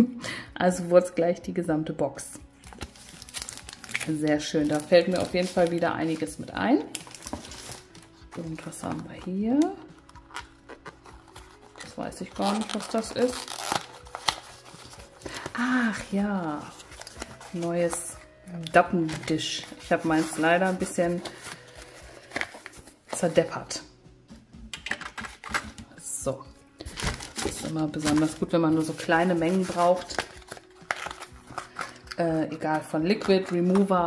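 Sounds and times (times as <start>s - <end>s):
faint background music: 0.0s - 34.0s
cardboard box opening: 2.7s - 4.0s, 7.0s - 7.8s, 10.0s - 17.6s, 19.0s - 23.3s, 26.9s - 32.1s.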